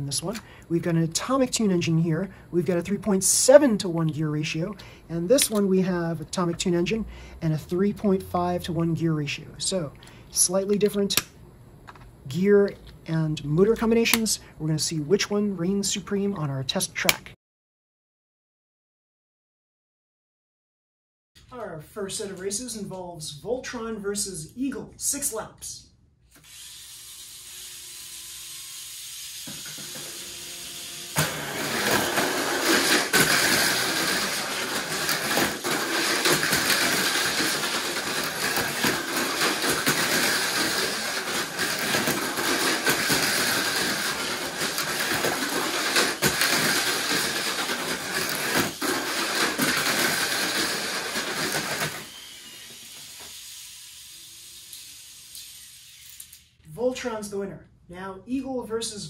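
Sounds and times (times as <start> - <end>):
whir of small electric motors: 26.3 - 56.6
toy cars rattling against track: 31.2 - 56.5.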